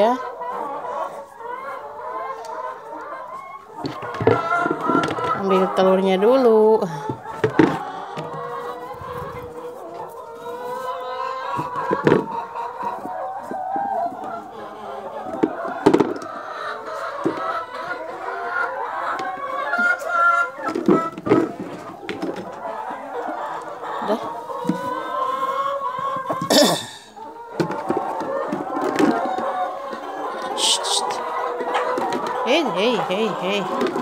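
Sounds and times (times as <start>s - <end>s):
chickens clucking: 0.0s - 34.0s.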